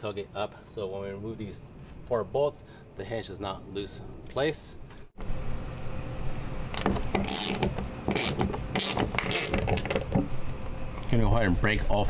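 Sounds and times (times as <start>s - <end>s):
hand ratchet clicking: 6.8s - 10.0s.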